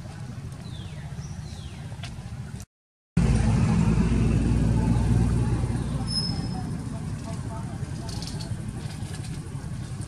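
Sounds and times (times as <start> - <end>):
vehicle engine rumble: 0.0 - 10.0.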